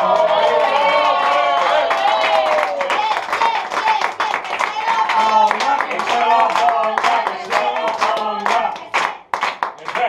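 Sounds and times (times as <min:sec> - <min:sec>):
group clapping in rhythm: 0:00.0 - 0:10.0
voices singing along: 0:03.4 - 0:09.0.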